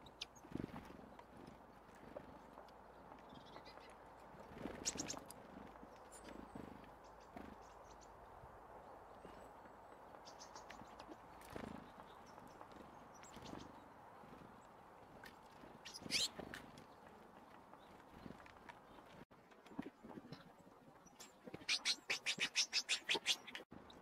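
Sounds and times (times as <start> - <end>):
beaks pecking and feet landing: 0.2 - 8.1, 9.6 - 23.6
thin high bird calls: 15.8 - 16.4, 21.1 - 23.6.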